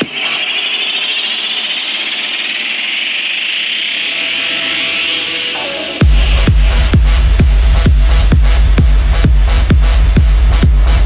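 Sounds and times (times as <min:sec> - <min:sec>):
techno synth riser: 0:00.0 - 0:11.0.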